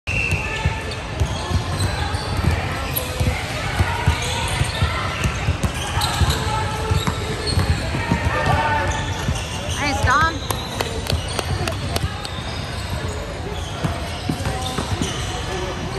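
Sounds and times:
echoing voices chatter: 0:00.3 - 0:15.9.

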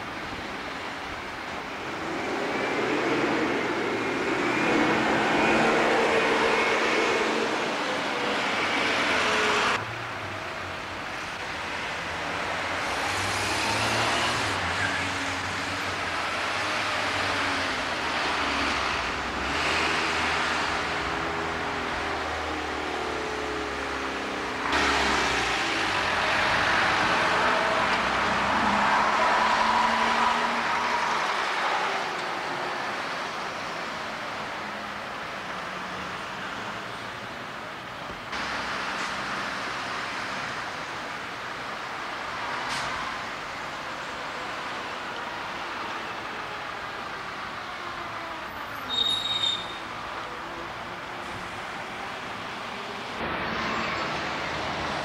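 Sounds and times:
diesel bus passing: 0:00.0 - 0:55.0
street traffic: 0:00.0 - 0:55.0.

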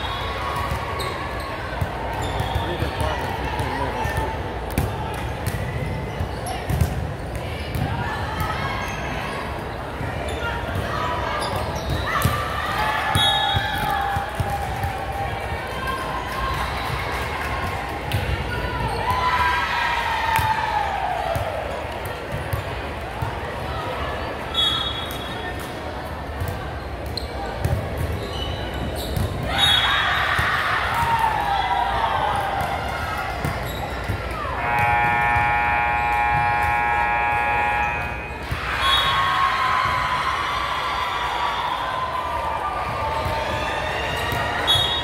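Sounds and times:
many voices chattering: 0:00.0 - 0:45.0
scoreboard buzzer: 0:34.6 - 0:38.4.

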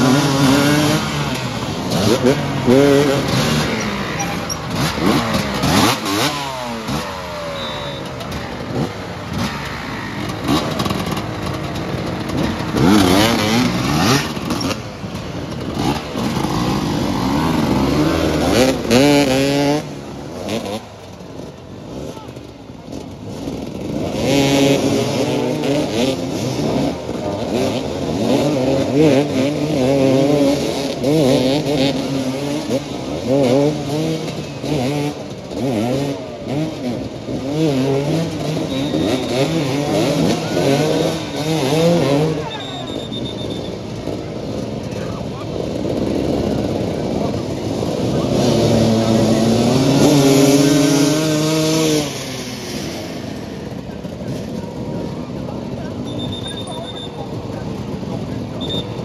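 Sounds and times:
motorcycles revving: 0:00.0 - 0:59.0.

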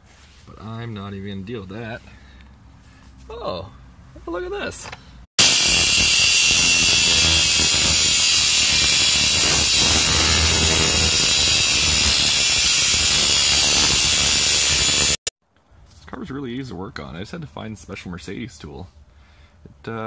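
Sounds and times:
angle grinder cutting steel: 0:05.4 - 0:15.3.

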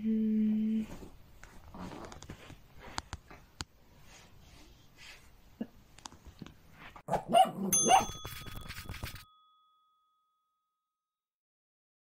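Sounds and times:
dog barking: 0:07.1 - 0:08.2
bell ringing: 0:07.7 - 0:10.9.

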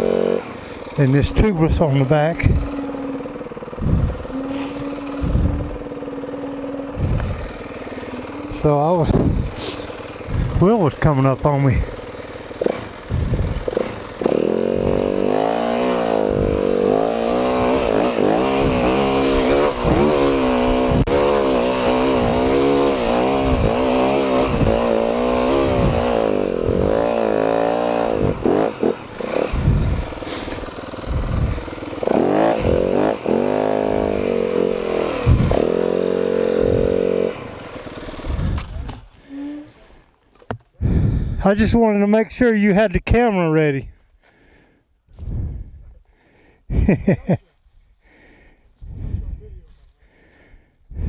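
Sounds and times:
dirt bike engine revving: 0:00.0 - 0:41.3.

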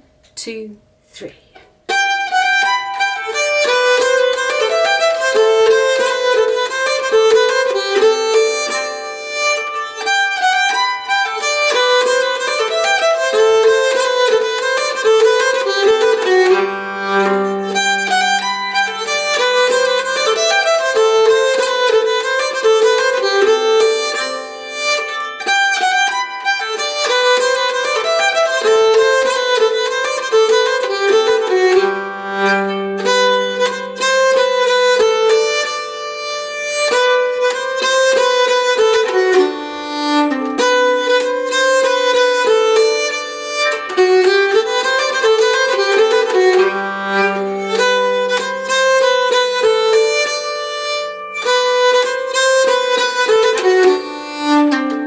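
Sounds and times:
bowed keyed fiddle melody: 0:01.8 - 0:55.0.

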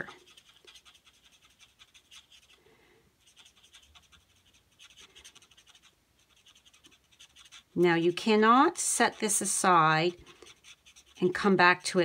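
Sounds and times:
marker scratching on cardstock: 0:00.0 - 0:02.6, 0:03.2 - 0:12.0.

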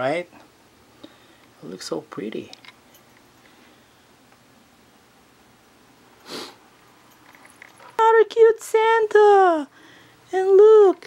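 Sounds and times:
sniff through the nose: 0:06.2 - 0:06.6.

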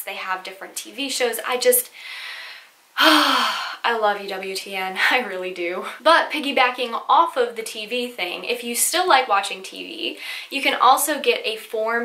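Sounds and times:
woman sighing: 0:02.0 - 0:03.8.

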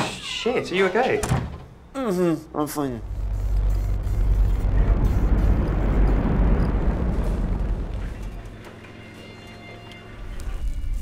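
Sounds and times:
loud low rumble: 0:03.0 - 0:08.8.

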